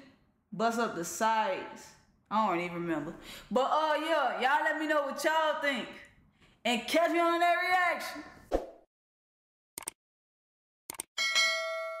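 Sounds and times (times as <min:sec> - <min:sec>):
bright bell ding: 0:11.2 - 0:12.0.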